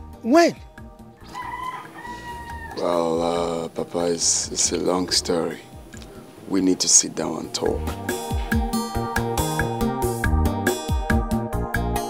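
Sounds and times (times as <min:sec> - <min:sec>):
rooster crowing: 0:01.2 - 0:03.2.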